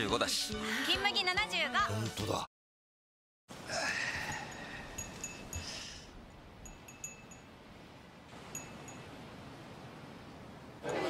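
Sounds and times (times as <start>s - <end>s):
wind chime tinkling: 4.2s - 7.6s, 8.5s - 9.1s.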